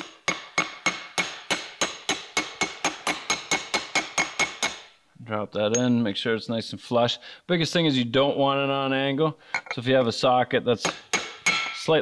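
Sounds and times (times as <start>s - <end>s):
hammer tapping metal tool: 0.0s - 4.9s, 10.8s - 11.9s.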